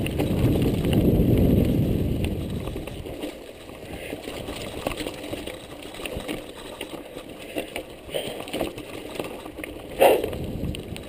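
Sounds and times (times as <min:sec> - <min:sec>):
bike knocks and rattles: 0:00.0 - 0:11.0
bike tyres on dirt and stone: 0:00.0 - 0:11.0.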